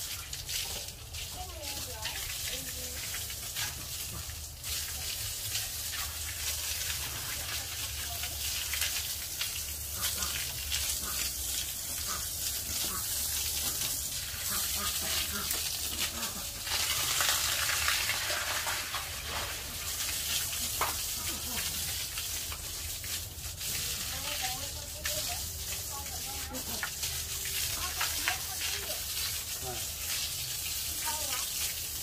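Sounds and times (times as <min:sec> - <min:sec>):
hose spraying water on concrete: 0:00.0 - 0:32.0.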